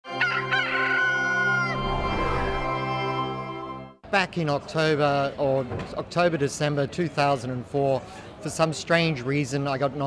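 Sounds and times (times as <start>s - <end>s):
sustained music chord: 1.7s - 4.0s.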